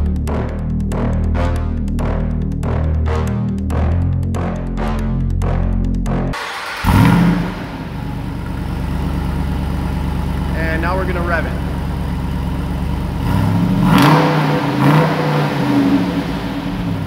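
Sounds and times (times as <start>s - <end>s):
electronic music with steady beat: 0.0s - 8.0s
engine starting and revving: 6.4s - 9.4s, 13.0s - 17.0s
deep engine idle: 6.8s - 13.6s.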